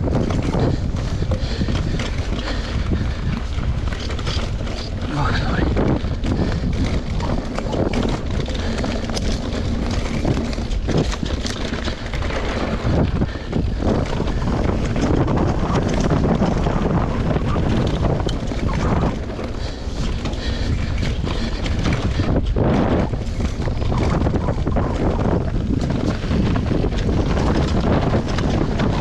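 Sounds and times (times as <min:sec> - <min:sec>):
tyres rolling over dirt: 0:00.0 - 0:29.0
wind rushing over microphone: 0:00.0 - 0:29.0
bike knocks and clicks: 0:05.8 - 0:29.0.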